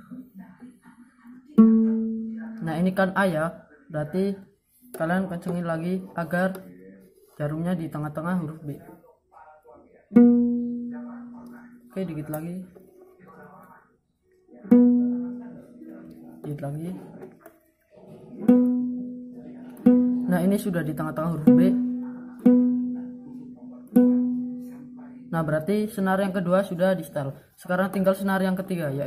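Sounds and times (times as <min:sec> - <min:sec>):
plucked string ringing: 0:01.6 - 0:02.6, 0:10.1 - 0:11.6, 0:14.7 - 0:15.6, 0:18.3 - 0:25.2.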